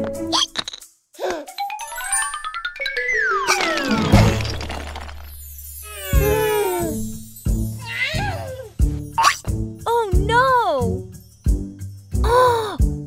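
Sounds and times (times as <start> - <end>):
rising cartoon notes: 1.6 - 4.6.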